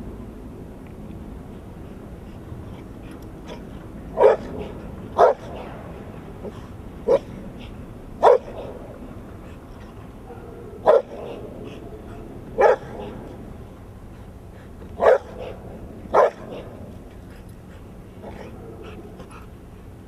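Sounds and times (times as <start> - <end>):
dog barking: 4.2 - 5.5, 8.2 - 8.8, 10.3 - 11.8, 12.6 - 13.2, 15.0 - 16.6.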